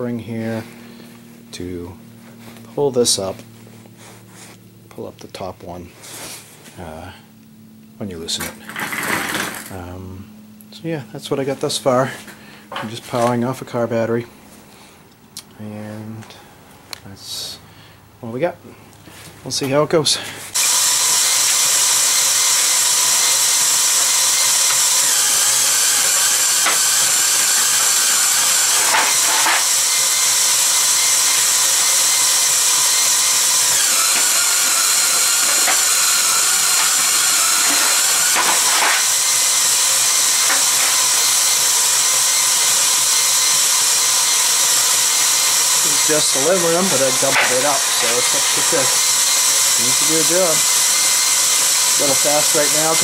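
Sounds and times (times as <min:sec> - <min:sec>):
cordless drill motor running: 0:08.6 - 0:09.8, 0:20.5 - 0:53.0.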